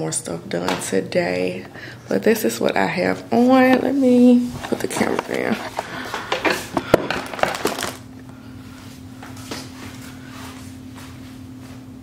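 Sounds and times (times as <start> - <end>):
steady low hum: 0.0 - 12.0
camera handling rustles and knocks: 4.6 - 8.0.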